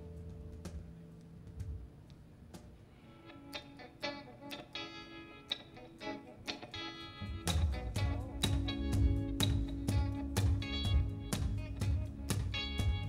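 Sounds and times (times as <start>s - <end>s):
electric guitar picking notes: 0.0s - 13.0s.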